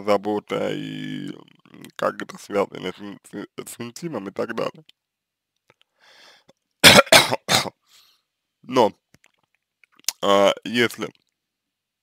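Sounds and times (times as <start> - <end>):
man breathing in: 5.9 - 6.6, 7.8 - 8.3
man coughing: 6.8 - 7.8.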